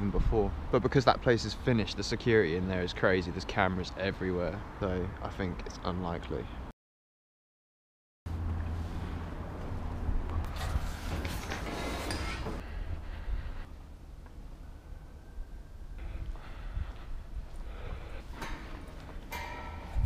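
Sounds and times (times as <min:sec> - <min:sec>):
low rumble of wind on microphone: 0:08.3 - 0:11.6, 0:12.6 - 0:20.0.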